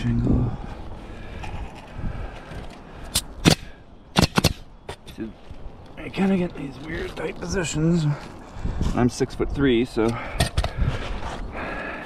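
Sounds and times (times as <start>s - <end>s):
nail gun shots: 3.1s - 4.6s.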